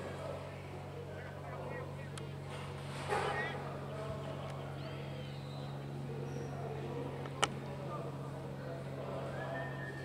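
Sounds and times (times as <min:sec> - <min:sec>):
steady low hum: 0:00.0 - 0:10.0
distant shouts and calls: 0:03.1 - 0:10.0.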